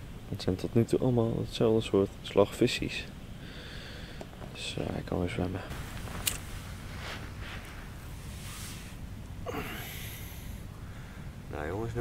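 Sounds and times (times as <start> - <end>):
faint soft rustles: 4.3 - 9.2.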